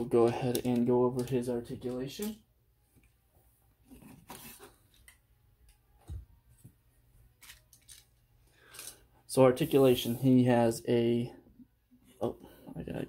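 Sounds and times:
plastic action figures clicking: 0:00.2 - 0:02.4.

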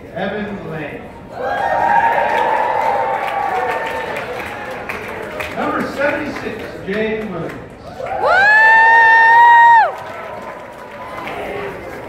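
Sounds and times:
audience applauding: 0:01.6 - 0:12.0.

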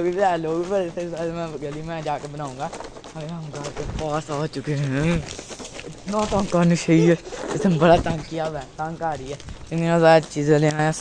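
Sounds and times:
young man speaking: 0:00.0 - 0:11.0.

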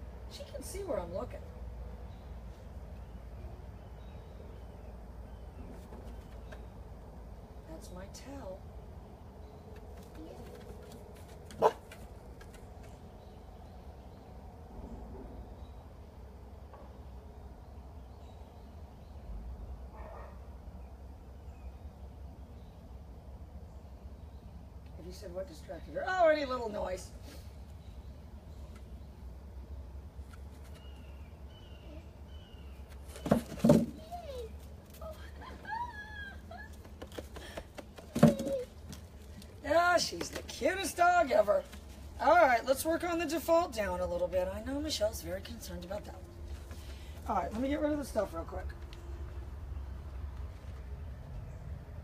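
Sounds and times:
dog barking: 0:11.6 - 0:11.8, 0:19.9 - 0:20.5.

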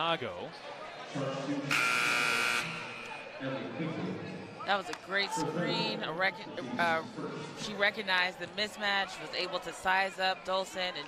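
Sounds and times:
arena horn buzzing: 0:01.7 - 0:03.1.

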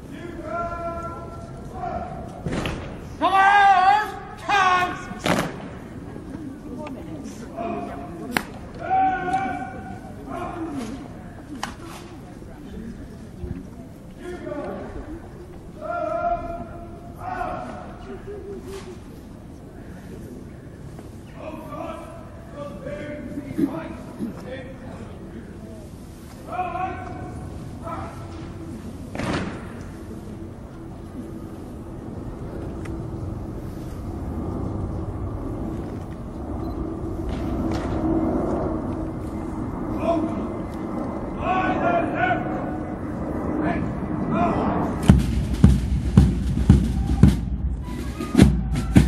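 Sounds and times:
person shouting a command: 0:00.2 - 0:02.3, 0:03.2 - 0:05.2, 0:08.8 - 0:10.8, 0:15.8 - 0:17.8, 0:26.5 - 0:28.3, 0:41.4 - 0:42.6.

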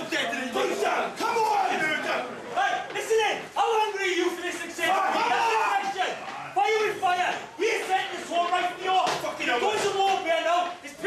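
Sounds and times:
group of men shouting together: 0:04.7 - 0:06.2.

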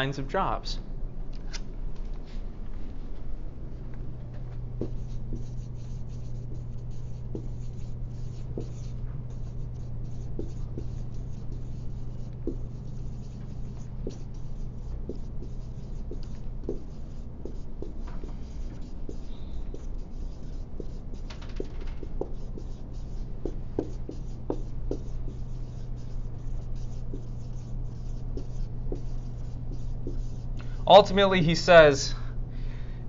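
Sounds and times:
low room hum: 0:00.0 - 0:33.0
writing strokes on a board: 0:04.8 - 0:31.1.

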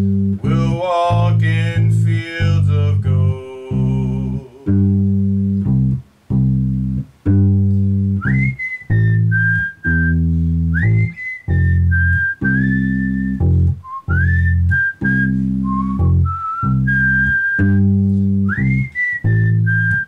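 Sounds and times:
electric bass long notes: 0:00.0 - 0:20.0
whistled melody: 0:07.4 - 0:20.0.

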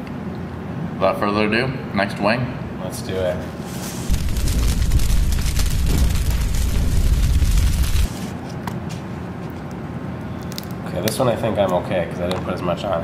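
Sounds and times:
deep rumbling boom: 0:04.1 - 0:08.2.

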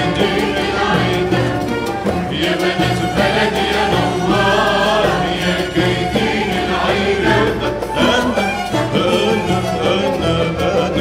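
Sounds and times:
choir singing: 0:00.0 - 0:11.0
orchestra with bowed strings: 0:00.0 - 0:11.0.

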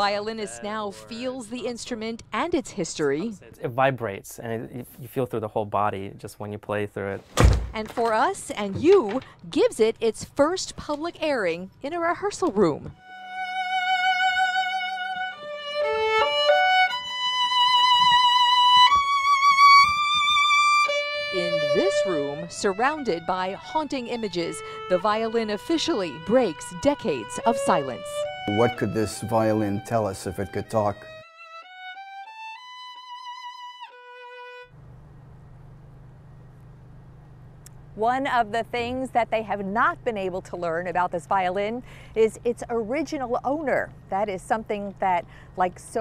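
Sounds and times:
solo violin melody: 0:12.9 - 0:34.8.

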